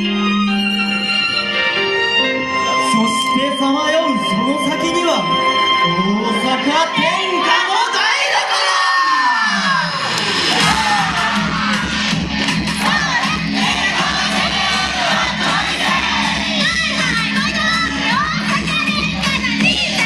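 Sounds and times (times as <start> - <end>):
loud recorded performance music: 0.0 - 20.0
dance team shouting calls: 6.9 - 20.0.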